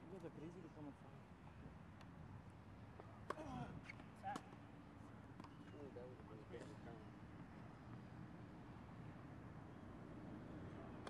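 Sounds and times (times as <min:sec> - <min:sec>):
faint men's voices talking: 0:00.0 - 0:01.8, 0:02.8 - 0:08.3, 0:10.3 - 0:11.0.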